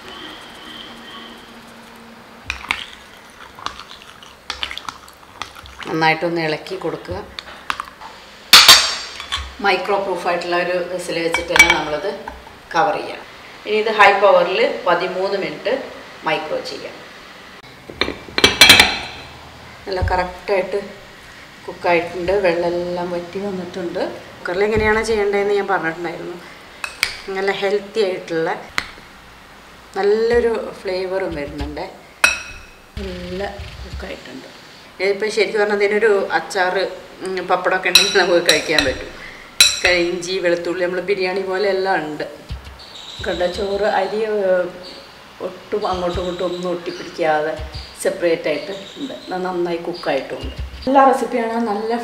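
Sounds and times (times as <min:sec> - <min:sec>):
spoon stirring rice in water: 0:02.5 - 0:06.0.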